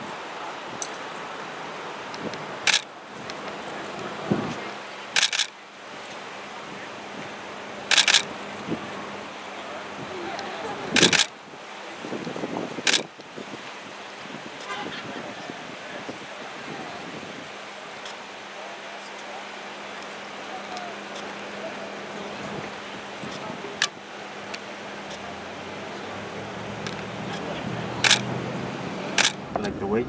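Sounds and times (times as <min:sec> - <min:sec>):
distant voices: 0:00.0 - 0:30.0
sharp clicks: 0:02.2 - 0:02.9, 0:05.2 - 0:05.5, 0:07.9 - 0:08.3, 0:11.0 - 0:11.3, 0:12.9 - 0:13.1, 0:28.0 - 0:28.3, 0:29.2 - 0:29.4.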